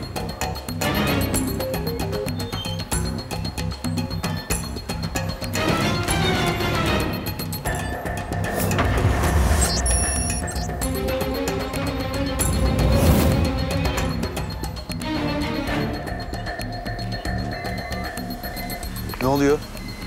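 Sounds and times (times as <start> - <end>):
dramatic background music: 0.0 - 20.0.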